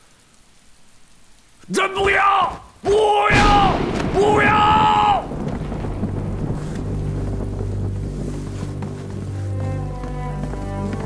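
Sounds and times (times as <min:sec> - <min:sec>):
faint steady hiss: 0:00.0 - 0:11.0
man shouting: 0:01.6 - 0:05.3.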